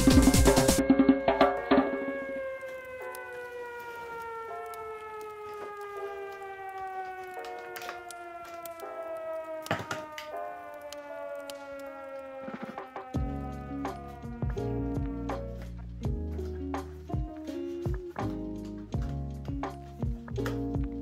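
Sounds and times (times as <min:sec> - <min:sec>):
siren-like tone falling in pitch: 0:00.0 - 0:15.5
cardboard packaging clicks: 0:02.6 - 0:11.7.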